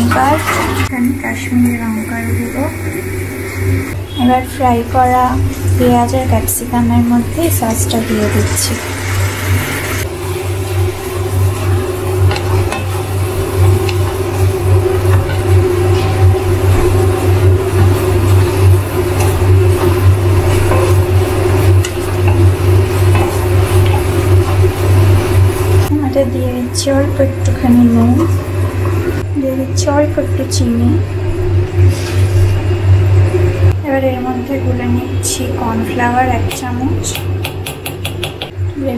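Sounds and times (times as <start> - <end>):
steady low hum: 0.0 - 38.9
vegetables sizzling in a wok: 7.5 - 25.9
spatula stirring in a wok: 9.3 - 25.9.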